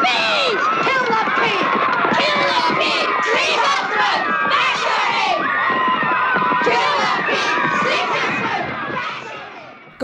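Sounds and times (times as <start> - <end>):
crowd of boys shouting: 0.0 - 10.0.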